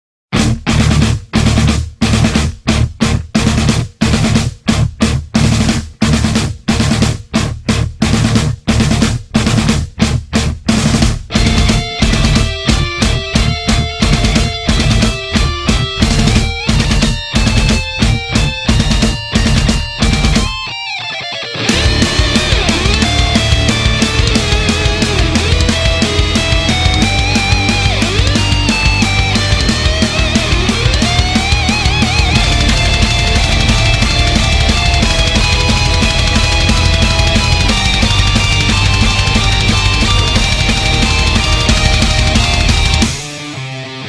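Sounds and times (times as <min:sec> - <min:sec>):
heavy drum and bass hits: 0:00.3 - 0:20.7, 0:21.6 - 0:43.6
sustained pitched notes: 0:21.5 - 0:44.0.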